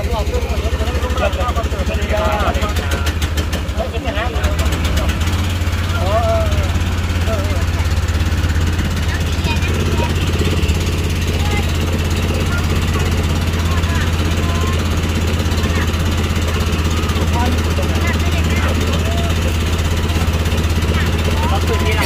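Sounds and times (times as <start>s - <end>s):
boat engine droning: 0.0s - 22.0s.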